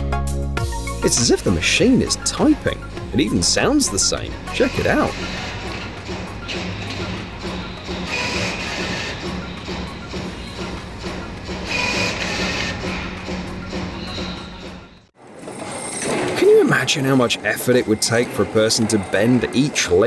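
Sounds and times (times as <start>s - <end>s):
machine clicking rapidly: 4.6s - 14.3s.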